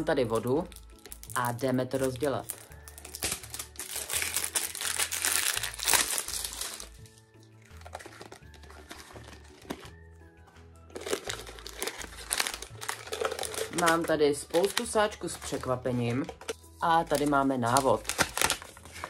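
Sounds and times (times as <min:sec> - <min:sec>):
background music: 0:00.0 - 0:19.0
plastic packaging crinkling: 0:00.3 - 0:09.9, 0:10.9 - 0:19.0.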